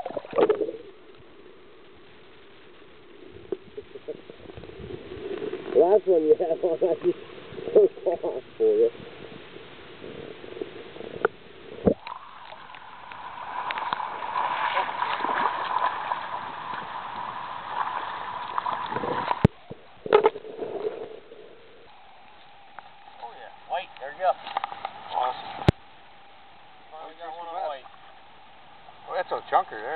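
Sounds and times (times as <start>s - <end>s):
river water splashing: 0.0s - 8.6s, 10.5s - 29.9s.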